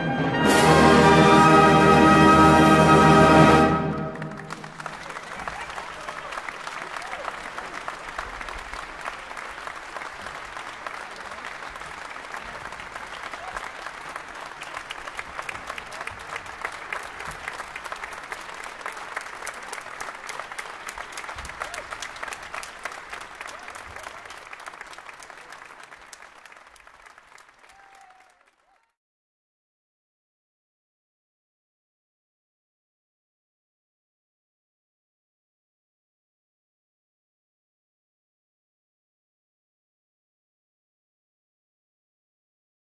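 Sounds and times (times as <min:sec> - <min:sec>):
audience applauding: 0:03.0 - 0:29.0.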